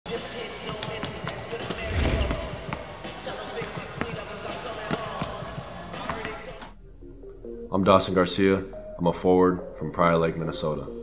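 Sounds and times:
music: 0.1s - 11.0s.

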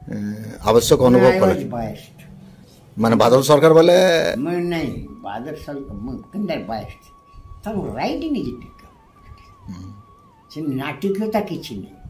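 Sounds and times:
elderly man speaking: 0.0s - 2.2s, 3.0s - 8.8s
faint wavering high tone: 0.0s - 12.0s.

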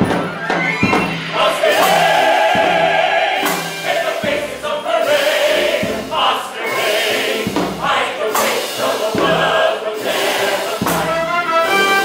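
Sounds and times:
live orchestra: 0.0s - 12.0s
ensemble singing in chorus: 1.0s - 12.0s.

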